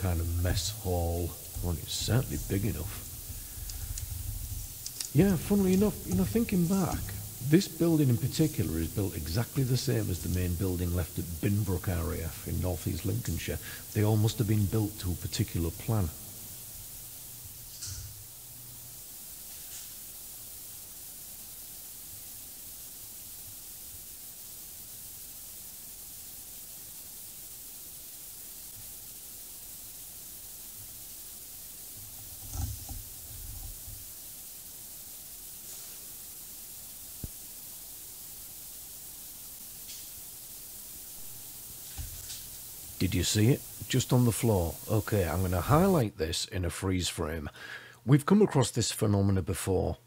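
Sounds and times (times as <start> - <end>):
camera recording hiss: 0.0 - 50.0
sharp click: 17.7 - 18.2.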